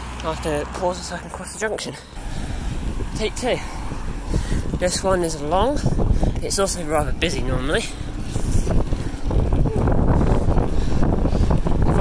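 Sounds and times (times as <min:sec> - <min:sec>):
tyres rumbling on rough asphalt: 0:00.0 - 0:12.0
wind buffeting microphone: 0:02.2 - 0:12.0.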